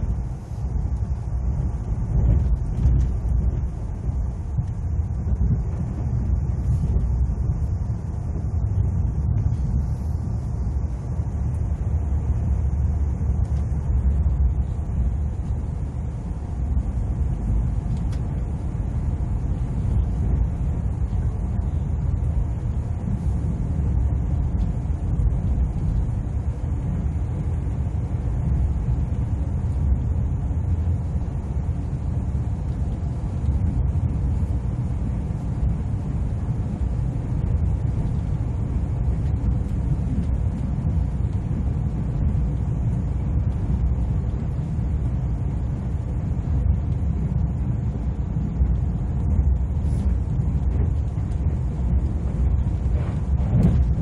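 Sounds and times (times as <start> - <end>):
train rumbling at speed: 0.0 - 54.0.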